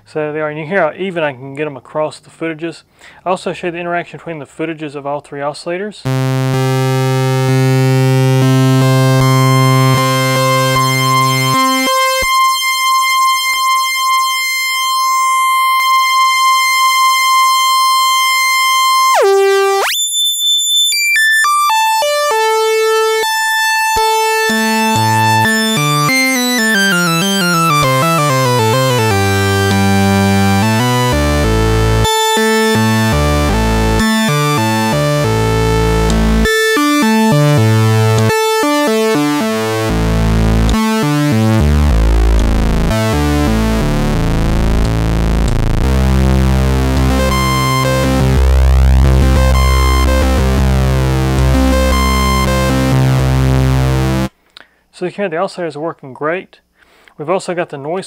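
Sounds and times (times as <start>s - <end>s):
synthesizer tones gliding in pitch: 6.1s - 54.3s.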